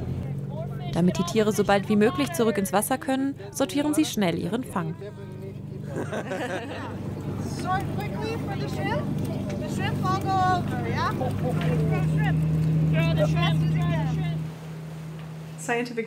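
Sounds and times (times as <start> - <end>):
boat engine humming: 0.0 - 16.0
people talking: 0.2 - 14.4, 15.6 - 16.0.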